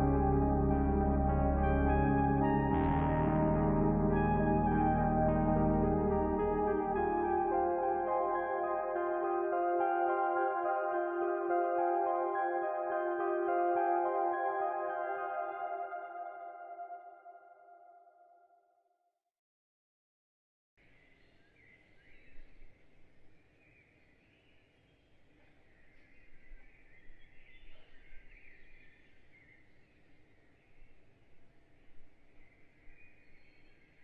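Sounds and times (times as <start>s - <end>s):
ambient music chord: 0.0s - 18.2s.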